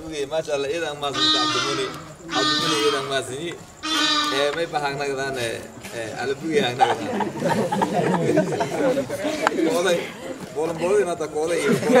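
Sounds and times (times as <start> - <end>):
men laughing and talking: 0.0 - 12.0.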